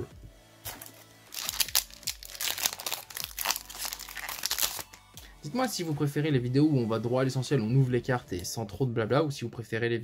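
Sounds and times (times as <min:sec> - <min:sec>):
foil wrapper crinkling and tearing: 0:00.7 - 0:05.0.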